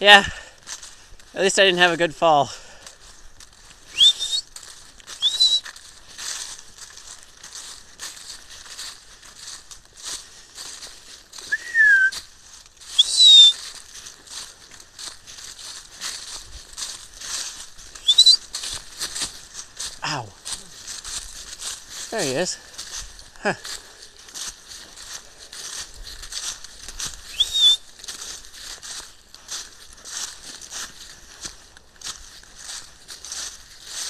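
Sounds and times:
footsteps crunching dry leaves: 0.0 - 34.0
high rising whistles: 18.0 - 18.4, 27.3 - 27.8.

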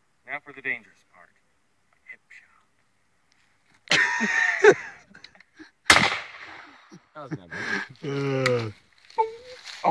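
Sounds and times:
laughter: 3.9 - 5.7, 6.8 - 8.0
gunshot with echo: 5.9 - 6.8
man talking: 7.0 - 8.8.

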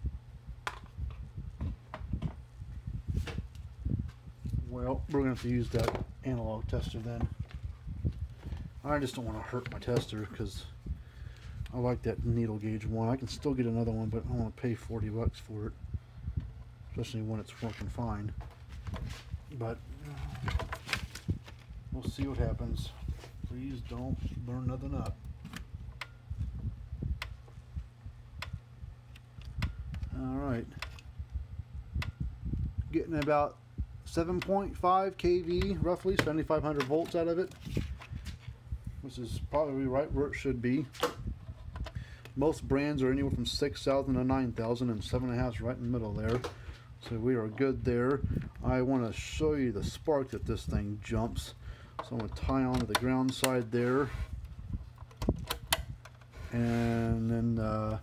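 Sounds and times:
clip handling clicks on plastic: 52.0 - 53.6
electric fence charger clicking: 55.0 - 56.3.

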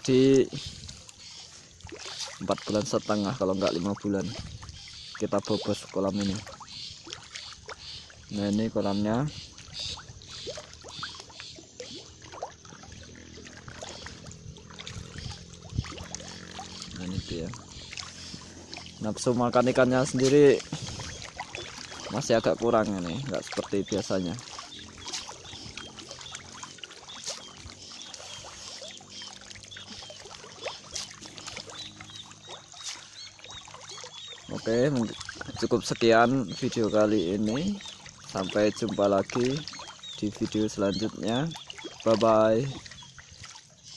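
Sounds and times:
fish splashing at water surface: 0.0 - 43.9.

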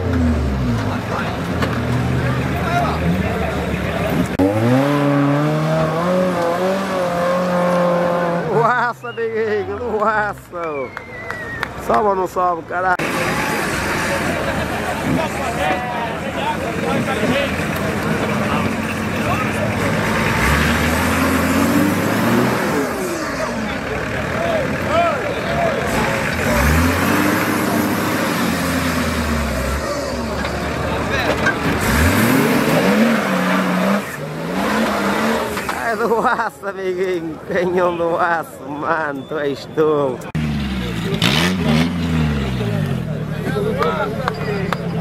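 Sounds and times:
diesel engine revving hard: 0.0 - 8.9, 13.0 - 36.3, 40.2 - 45.0
crowd voices: 0.0 - 45.0.

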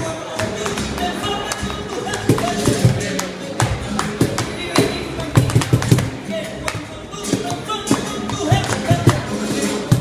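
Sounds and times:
flamenco music: 0.0 - 10.0
dancer's shoes tapping floor: 0.3 - 10.0.

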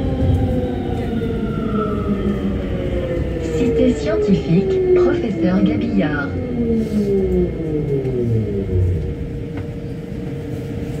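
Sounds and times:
rumble of train running gear: 0.0 - 11.0
train traction drive whining: 0.0 - 11.0.

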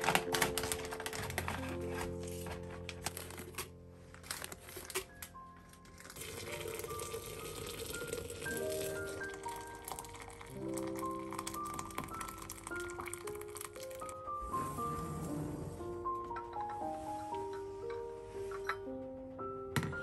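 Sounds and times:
plastic packet crinkling: 0.0 - 14.2
background music: 0.0 - 20.0
water pouring into glass pitcher: 5.9 - 14.2.

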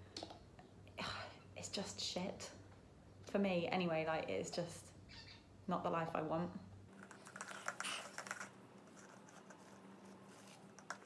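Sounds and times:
plastic cup clicks and crackles: 7.0 - 9.6, 10.7 - 11.0.

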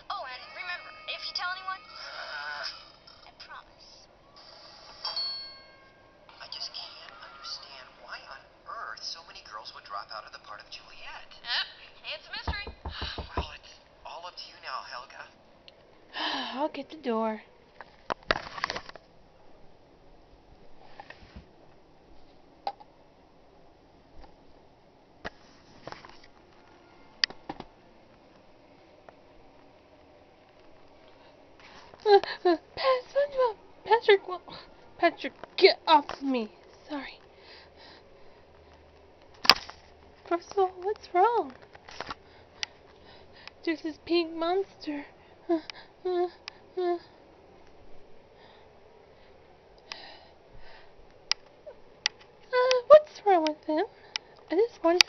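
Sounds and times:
bell-like chime: 5.0 - 6.2.

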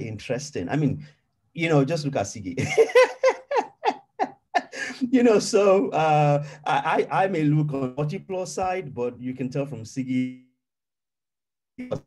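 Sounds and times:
man laughing heartily: 2.6 - 5.6.

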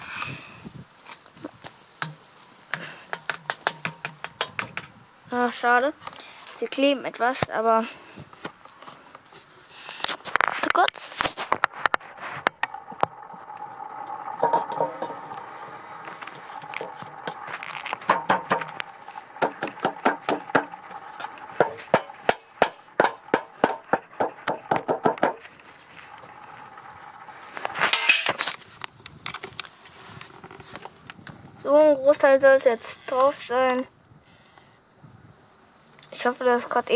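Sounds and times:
faint steady hum: 0.0 - 36.9.

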